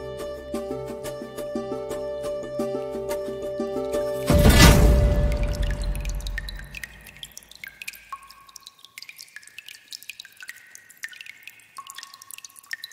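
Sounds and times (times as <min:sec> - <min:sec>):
loud musical hit: 0:04.2 - 0:07.1
water drops plinking: 0:05.0 - 0:12.9.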